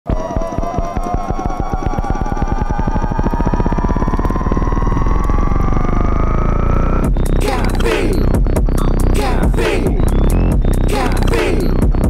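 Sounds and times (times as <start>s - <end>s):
pulsing electronic beat: 0.1s - 12.0s
rising synthesizer tones: 0.1s - 12.0s.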